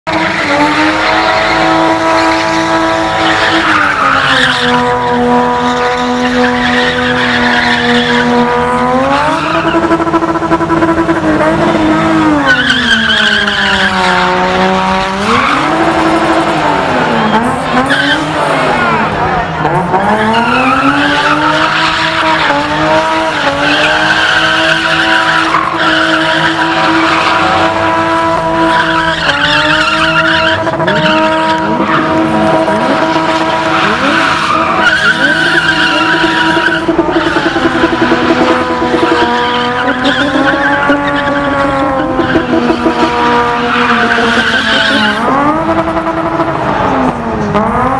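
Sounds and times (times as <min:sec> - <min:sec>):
tyre screech: 0:00.1 - 0:45.9
car engine revving high: 0:00.1 - 0:47.9.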